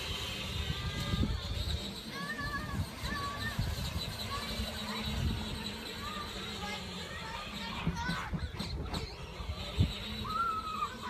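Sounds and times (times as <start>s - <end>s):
children calling out: 0.0s - 11.0s.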